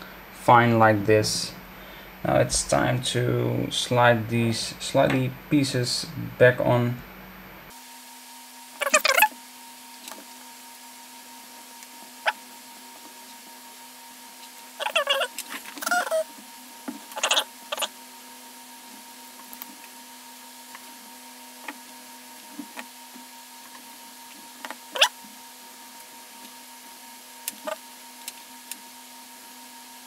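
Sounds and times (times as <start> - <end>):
faint steady hum: 0.0 - 30.0.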